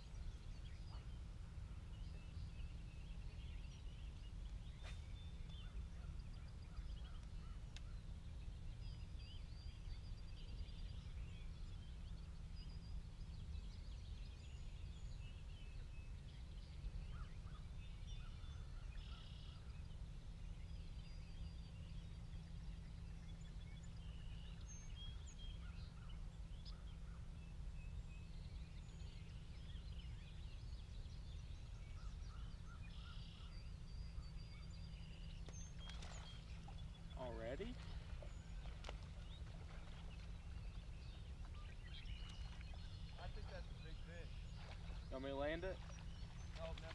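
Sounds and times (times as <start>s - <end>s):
steady low rumble: 0.0s - 46.9s
birds chirping and calling: 29.0s - 46.9s.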